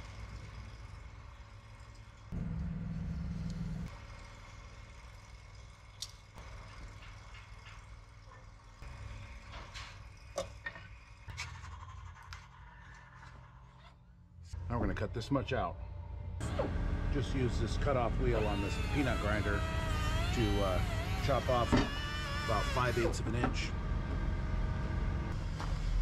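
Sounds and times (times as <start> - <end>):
steady low hum: 0.0 - 5.7, 14.0 - 26.0.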